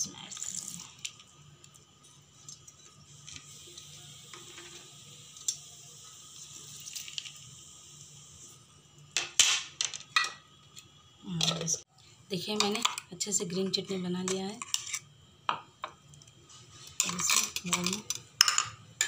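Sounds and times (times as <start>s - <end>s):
juice dripping and trickling: 6.7s - 7.6s.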